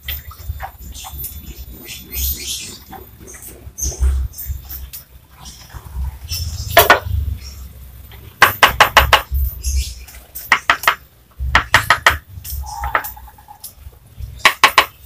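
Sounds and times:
mallet tapping ceramic tile: 10.5s - 11.0s, 14.5s - 15.0s.

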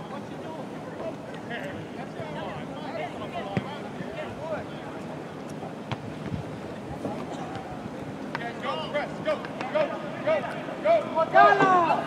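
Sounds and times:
outdoor ambient noise: 0.0s - 12.0s
distant shouts of players: 8.8s - 12.0s.

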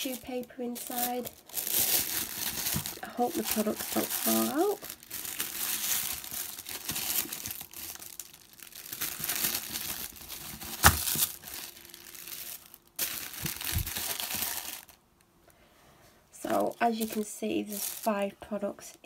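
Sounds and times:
tissue paper rustling: 0.0s - 15.0s, 16.5s - 18.2s.

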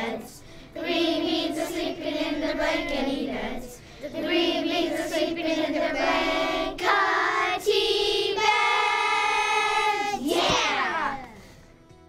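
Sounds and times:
children singing in unison: 0.0s - 10.3s.

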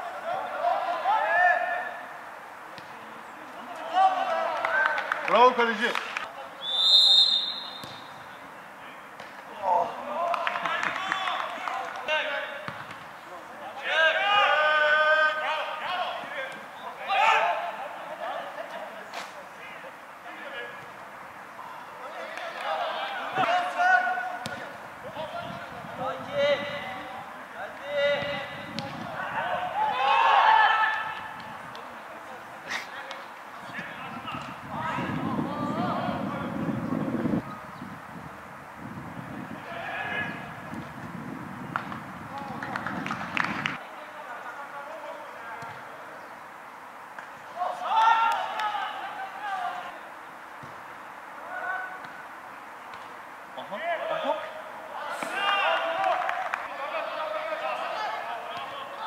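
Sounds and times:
players shouting and calling: 0.0s - 37.8s, 39.0s - 59.0s
referee's whistle blast: 6.6s - 8.1s.

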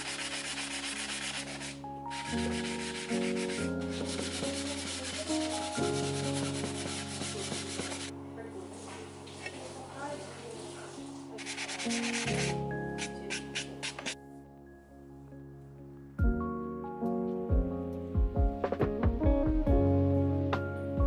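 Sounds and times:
sanding sponge rasping on tile: 0.0s - 8.1s, 11.4s - 14.2s
soft background music: 0.0s - 21.0s.

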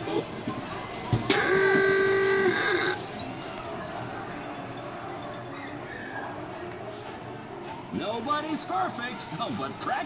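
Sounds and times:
electronic buzzer tone: 1.3s - 3.0s.

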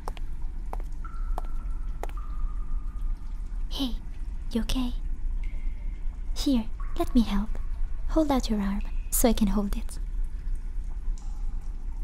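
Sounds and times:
water drips: 0.0s - 12.0s.

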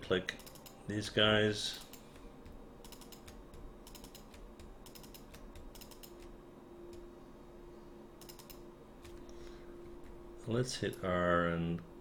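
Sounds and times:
faint steady hum: 0.0s - 12.0s
mouse and keyboard clicking: 1.8s - 7.0s, 8.2s - 9.2s.

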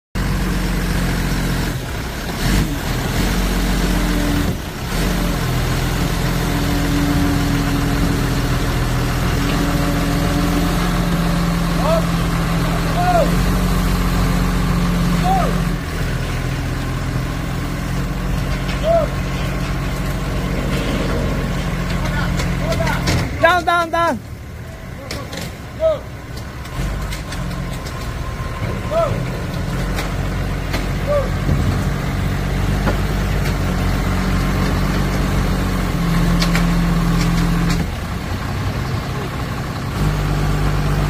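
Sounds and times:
forklift engine running under load: 0.2s - 41.0s.

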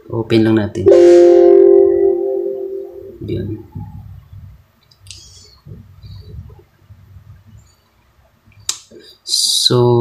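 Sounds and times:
bell-like chime ringing: 0.9s - 3.2s.

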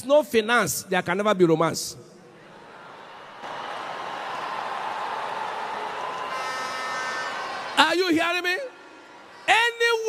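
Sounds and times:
congregation reacting: 2.3s - 10.0s.

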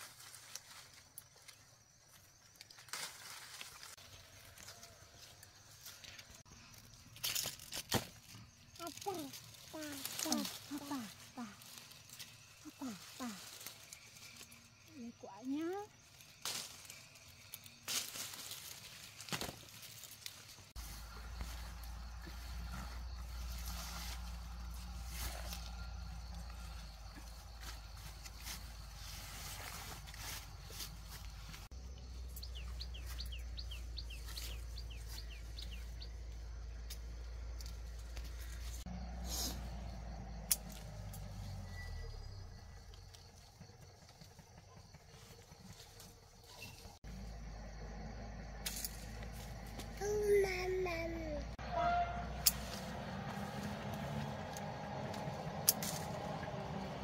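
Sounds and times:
leaves and branches rustling: 0.0s - 47.5s, 48.6s - 57.0s
small bird chirping: 30.6s - 38.8s.

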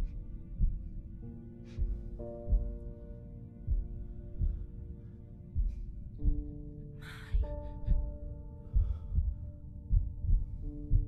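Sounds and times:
low heartbeat-like thumps: 0.0s - 1.0s, 1.7s - 2.9s, 3.6s - 4.8s, 5.6s - 6.7s, 7.3s - 11.0s.

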